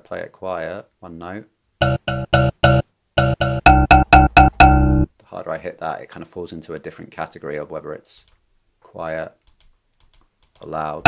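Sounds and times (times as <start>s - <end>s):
mbira notes: 1.8s - 5.1s.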